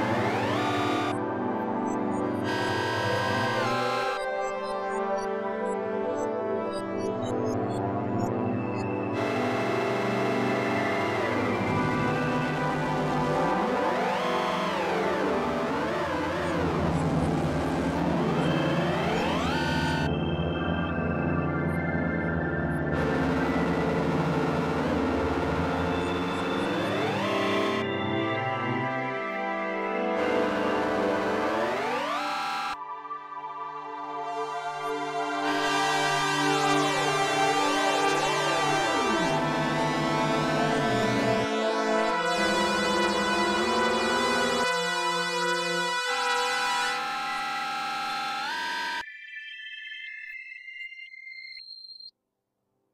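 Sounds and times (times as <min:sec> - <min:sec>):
synthesizer holding a note: 0:00.0 - 0:01.3, 0:02.4 - 0:04.4, 0:09.1 - 0:20.4, 0:22.8 - 0:28.2, 0:29.9 - 0:32.8, 0:35.0 - 0:49.0
steady low synth drone: 0:08.4 - 0:28.8
synth tone sweeping upward: 0:22.9 - 0:28.0.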